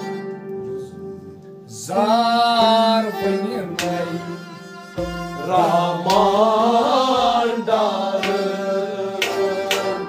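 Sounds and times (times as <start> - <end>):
bowed sarangi: 0.0 - 10.0
harmonium: 0.0 - 10.0
man singing: 1.7 - 10.0.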